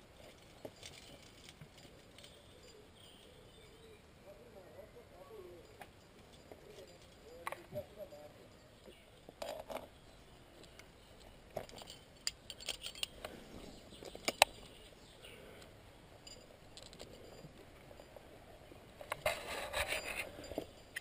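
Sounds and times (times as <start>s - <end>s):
metal carabiners clinking: 0.1s - 4.0s, 5.4s - 21.0s.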